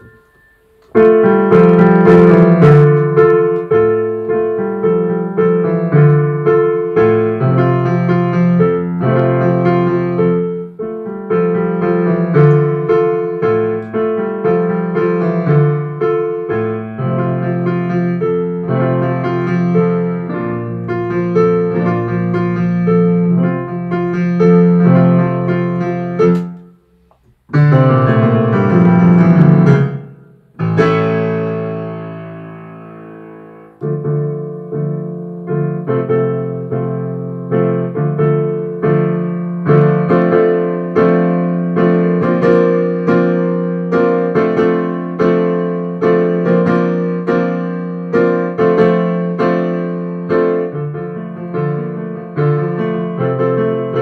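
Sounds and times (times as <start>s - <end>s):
digital piano sustained chords: 0.0s - 26.8s, 27.5s - 54.0s.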